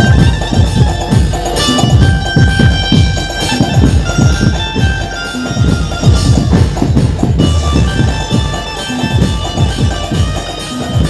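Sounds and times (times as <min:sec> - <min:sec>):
band playing loud music: 0:00.0 - 0:11.0
deep drum hits: 0:05.6 - 0:08.5.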